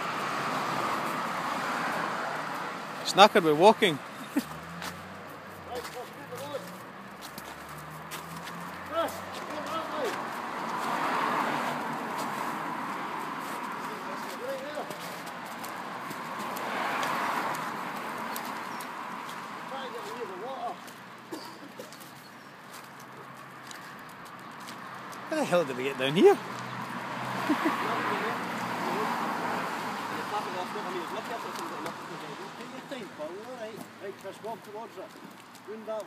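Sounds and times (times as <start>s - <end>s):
footsteps on slushy road: 0.0s - 36.0s.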